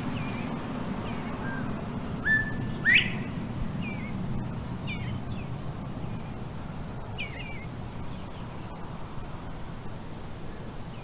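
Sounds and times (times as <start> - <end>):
birds chirping: 0.0 - 6.4, 7.1 - 8.8
low background rumble: 0.0 - 11.0.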